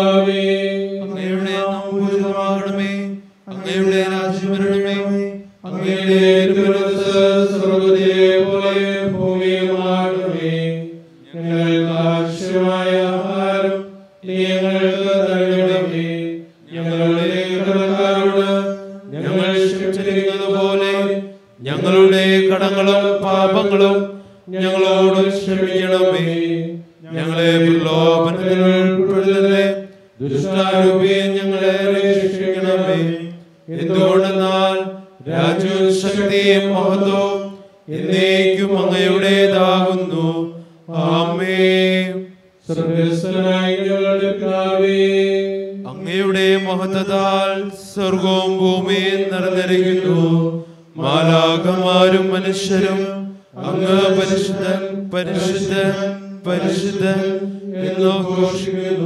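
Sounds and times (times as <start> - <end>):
man chanting prayers: 0.0 - 59.0.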